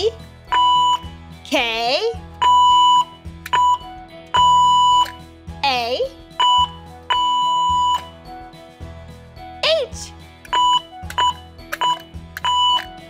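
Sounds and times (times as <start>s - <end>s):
electronic morse code beeps: 0.5s - 1.1s, 2.4s - 5.2s, 6.4s - 8.1s, 10.5s - 13.0s.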